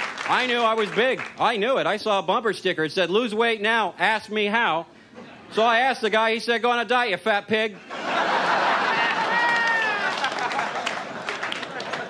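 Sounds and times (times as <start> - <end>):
people clapping: 0.0 - 1.4, 8.7 - 12.0
audience laughing: 7.8 - 12.0.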